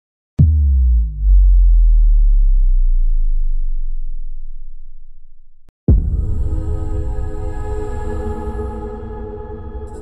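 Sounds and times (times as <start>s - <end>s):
deep boom sliding into low hum: 0.4s - 6.6s.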